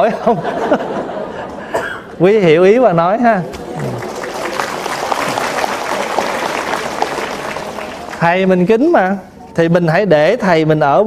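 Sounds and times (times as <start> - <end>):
audience applauding: 3.5 - 8.8.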